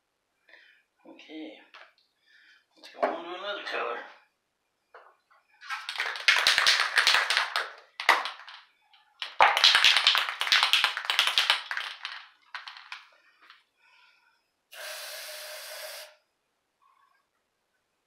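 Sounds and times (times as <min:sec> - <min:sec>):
spray can ball rattling: 0:05.6 - 0:13.1
spray hiss: 0:14.7 - 0:16.2.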